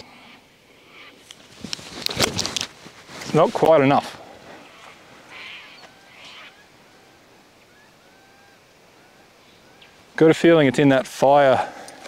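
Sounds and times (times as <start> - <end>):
loud bird calls: 4.2 - 10.4
bird chirps: 4.6 - 10.1.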